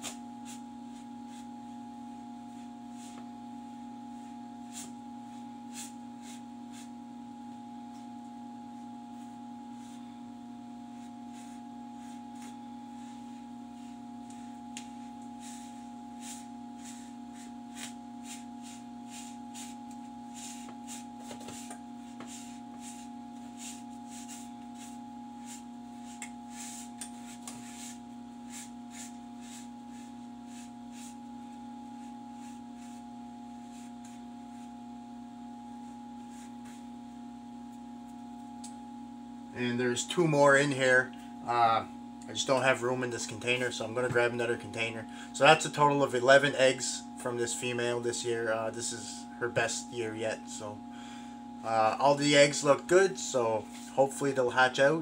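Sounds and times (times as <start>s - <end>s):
low electrical hum: 0.0s - 55.0s.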